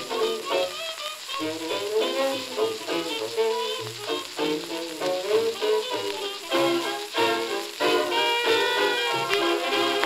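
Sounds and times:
jazz dance band on record: 0.0s - 10.0s
record surface hiss: 0.0s - 10.0s.

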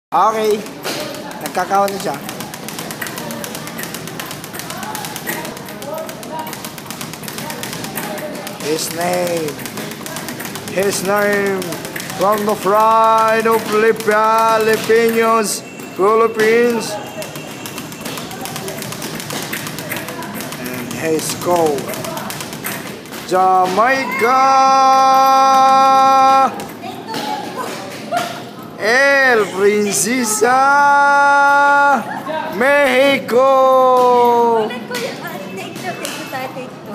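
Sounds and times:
speed bag being punched: 0.5s - 27.3s.

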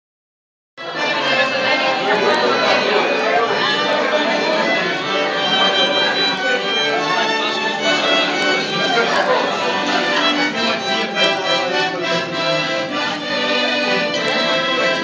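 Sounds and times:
diners talking: 0.8s - 15.0s
violin melody: 0.8s - 15.0s.

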